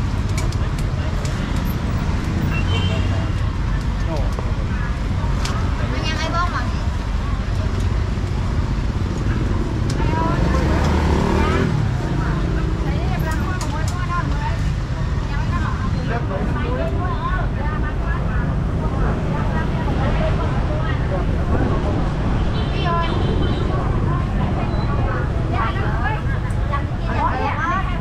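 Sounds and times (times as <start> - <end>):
low traffic rumble: 0.0 - 28.0
people talking: 0.0 - 28.0.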